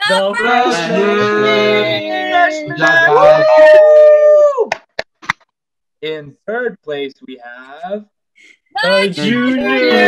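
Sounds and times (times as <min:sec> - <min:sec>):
person cheering: 0:00.0 - 0:04.8.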